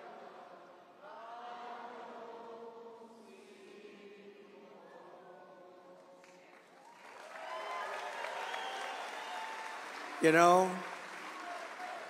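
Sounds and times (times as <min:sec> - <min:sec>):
crowd singing together: 0:00.0 - 0:06.4.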